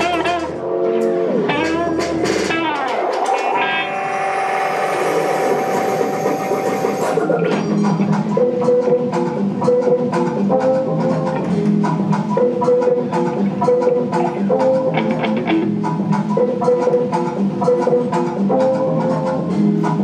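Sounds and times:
repeated guitar figure: 0:00.0 - 0:04.1, 0:06.3 - 0:20.0
drums: 0:00.0 - 0:20.0.

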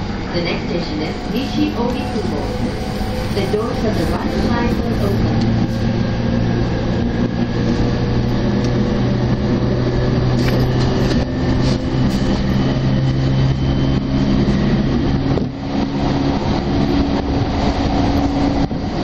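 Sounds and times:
train passing alongside: 0:00.0 - 0:19.0
train wheels rumbling on rail: 0:00.0 - 0:19.0.

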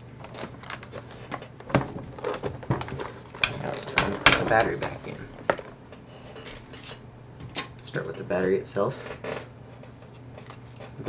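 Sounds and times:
plastic laptop knocks and clicks: 0:01.6 - 0:05.6.

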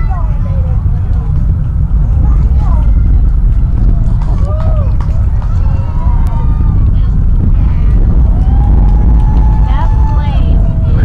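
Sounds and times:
distant rocket rumble: 0:00.0 - 0:11.0.

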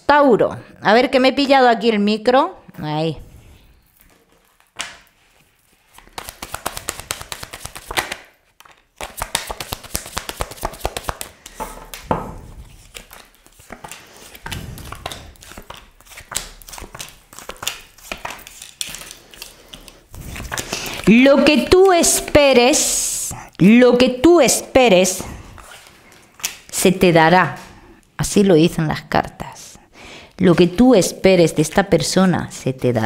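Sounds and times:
cards flicked and tapped on desk: 0:06.1 - 0:20.8.

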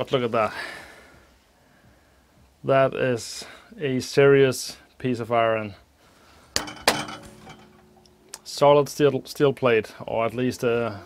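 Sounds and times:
metallic knocks on steel plate: 0:06.6 - 0:08.3
metallic ringing tone: 0:06.6 - 0:08.6.

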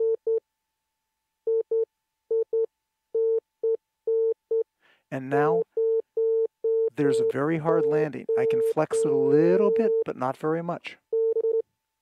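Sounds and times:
morse code beeps: 0:05.8 - 0:10.1.

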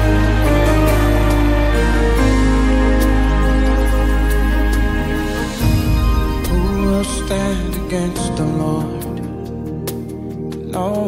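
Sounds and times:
instrumental music with deep bass: 0:00.0 - 0:11.0.

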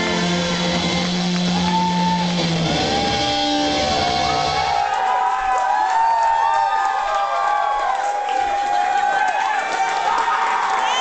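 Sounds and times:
electric guitar feedback: 0:00.0 - 0:04.8.

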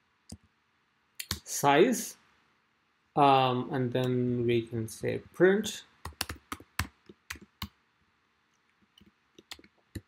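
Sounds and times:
typing on computer keyboard: 0:06.0 - 0:07.8.

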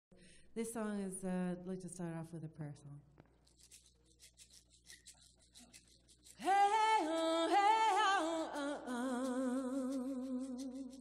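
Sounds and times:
hand rattle shaking: 0:03.4 - 0:11.0.

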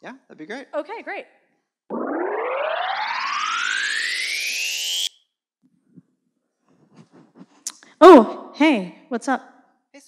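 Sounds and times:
electronic rising sweep: 0:01.9 - 0:05.1.

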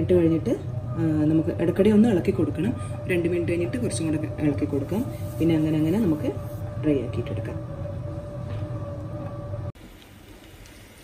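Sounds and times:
pan boiling vigorously: 0:00.0 - 0:11.0.

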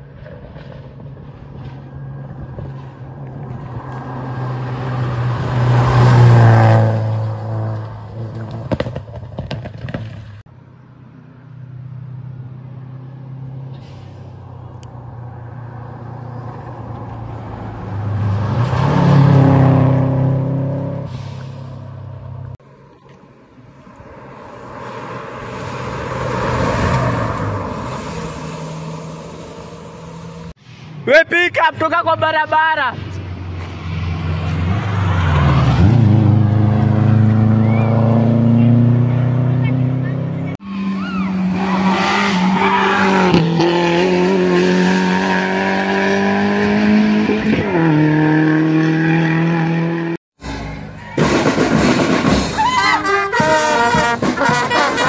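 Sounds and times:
rally cars passing at full throttle: 0:00.0 - 0:55.0.

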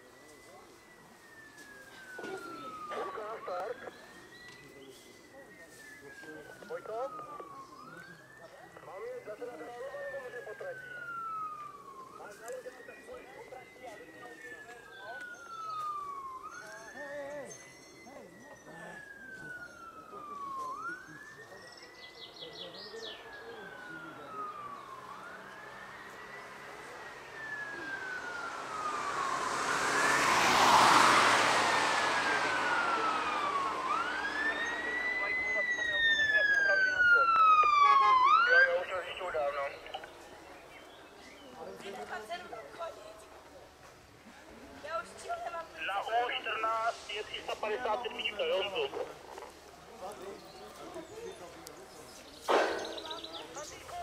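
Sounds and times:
siren yelps: 0:00.0 - 0:43.4, 0:44.4 - 0:54.0
fire engine siren wailing: 0:00.0 - 0:54.0
loud rush of noise: 0:26.5 - 0:35.5.

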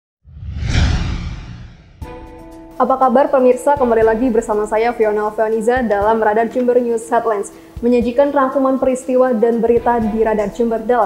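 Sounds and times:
whoosh with deep rumble: 0:00.2 - 0:02.4.

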